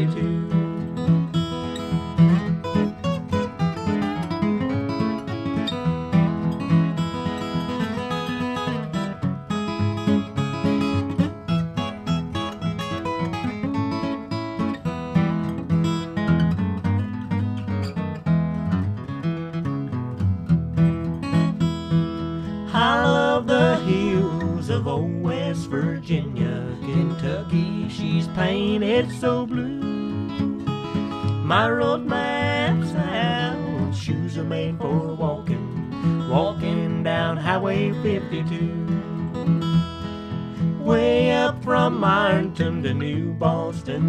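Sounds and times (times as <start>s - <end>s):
person singing: 0.0s - 0.8s, 22.7s - 39.3s, 40.7s - 44.0s
flatpicked acoustic guitar melody: 0.0s - 44.0s
strummed acoustic guitar rhythm: 0.0s - 44.0s.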